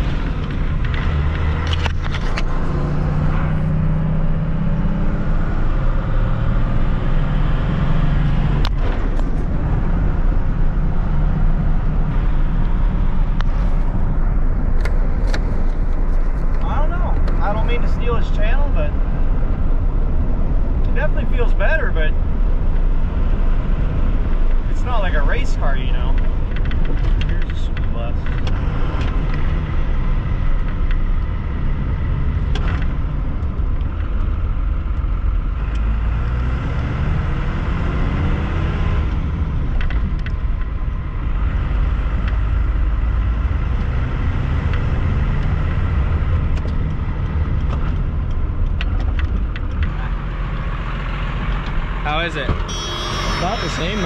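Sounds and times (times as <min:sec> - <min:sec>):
diesel engine droning while driving: 0:29.6 - 0:54.0.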